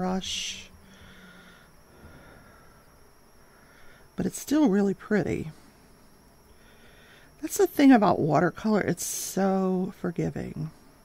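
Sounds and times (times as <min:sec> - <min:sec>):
faint high hum: 0:00.0 - 0:11.0.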